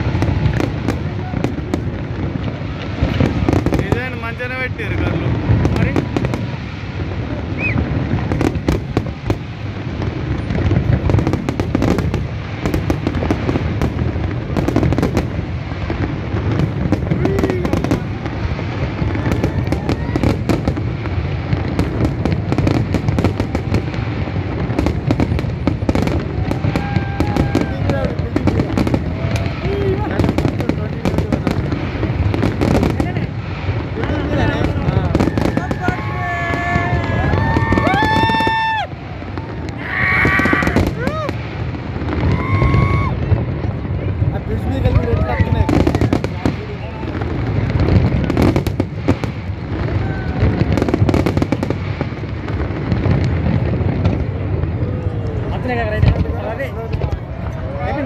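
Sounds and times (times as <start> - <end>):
crowd voices: 0.0 - 58.0
fireworks bursting: 0.0 - 58.0.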